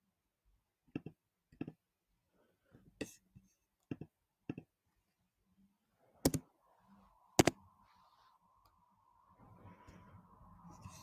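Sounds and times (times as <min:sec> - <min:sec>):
computer mouse clicking: 0:06.2 - 0:06.4, 0:07.4 - 0:07.6.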